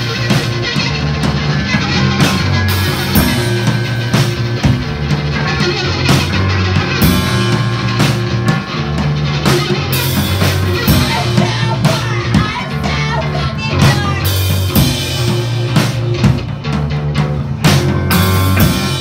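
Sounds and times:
drum and cymbal hits: 0:00.0 - 0:19.0
live band playing: 0:00.0 - 0:19.0.

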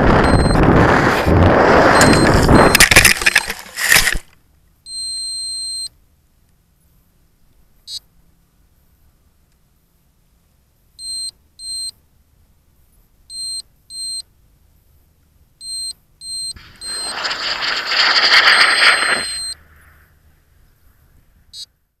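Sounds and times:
loud rush of noise: 0:00.0 - 0:04.2, 0:16.6 - 0:19.6
brief crackle: 0:00.0 - 0:04.4, 0:16.6 - 0:20.0
short high-pitched beeps: 0:00.1 - 0:00.7, 0:01.8 - 0:04.2, 0:04.9 - 0:05.9, 0:15.6 - 0:19.6
steady beep: 0:00.1 - 0:00.7, 0:01.8 - 0:03.1, 0:18.8 - 0:19.6.

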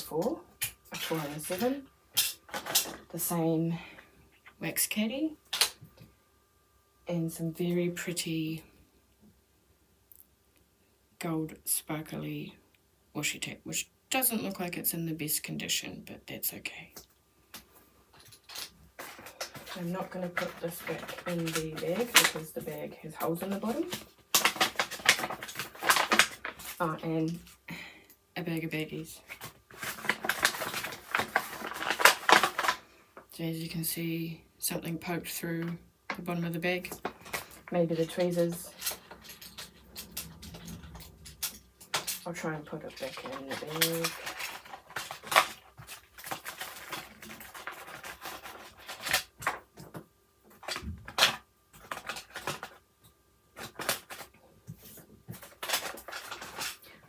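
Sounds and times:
plastic bags crinkling: 0:00.0 - 0:04.0, 0:18.1 - 0:27.6, 0:28.6 - 0:33.3, 0:36.1 - 0:52.8, 0:53.5 - 0:57.0
plastic tools clicking and rattling: 0:37.0 - 0:50.0.

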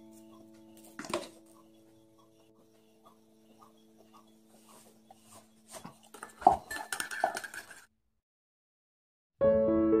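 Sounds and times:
metal spoon clinking ceramic bowl: 0:06.2 - 0:07.8.

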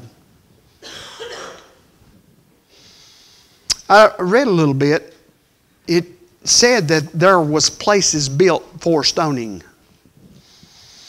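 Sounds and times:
person coughing: 0:00.8 - 0:01.8.

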